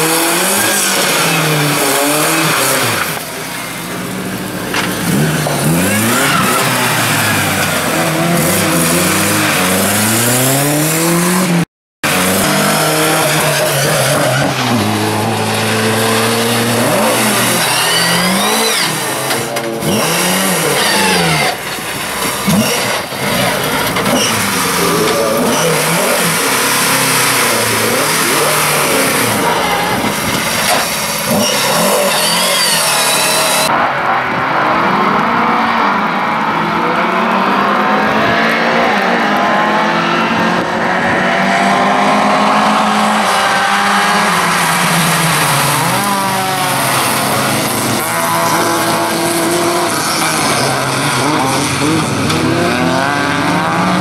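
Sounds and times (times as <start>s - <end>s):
race car engines revving: 0.0s - 54.0s.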